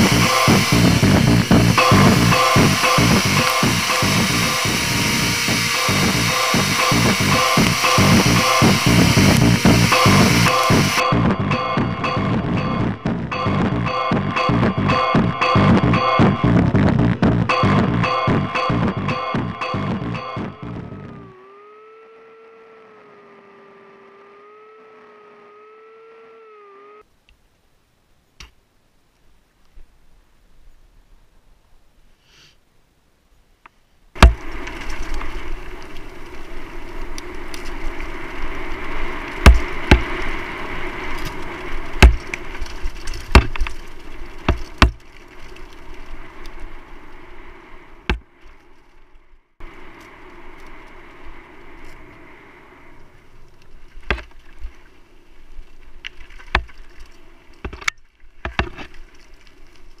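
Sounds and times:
bike tyres rattling and rushing: 0.0 - 11.9, 34.2 - 52.2
bike knocking over bumps: 34.2 - 35.4, 39.4 - 40.3, 41.3 - 45.1.

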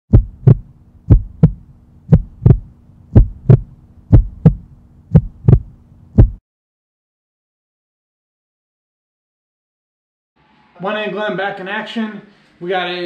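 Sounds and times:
heartbeat thumps: 0.1 - 6.4
steady low hum: 0.1 - 6.4.

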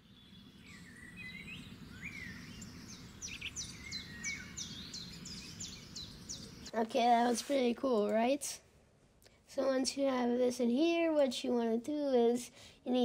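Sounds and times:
birds chirping: 0.0 - 6.8.

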